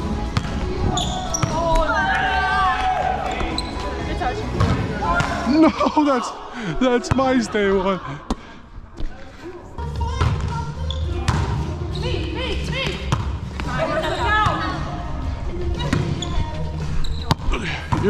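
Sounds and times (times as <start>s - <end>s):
players' voices: 0.2s - 18.0s.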